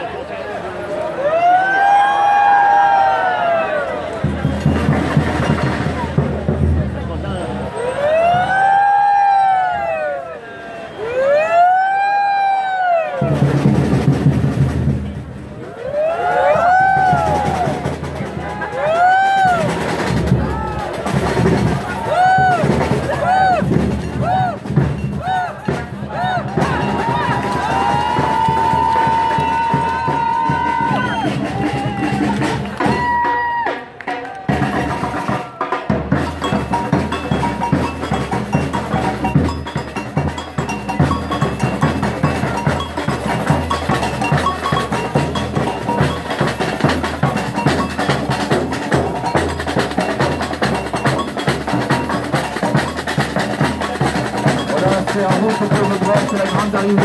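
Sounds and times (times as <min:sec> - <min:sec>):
samba percussion group: 0:03.5 - 0:10.0, 0:13.2 - 0:57.0.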